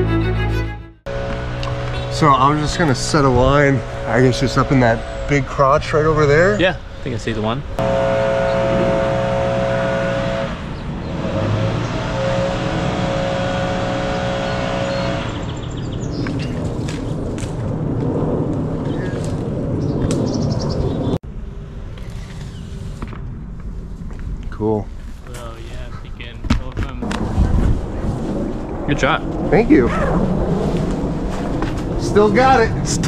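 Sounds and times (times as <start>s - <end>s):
engine humming: 0.0s - 24.4s.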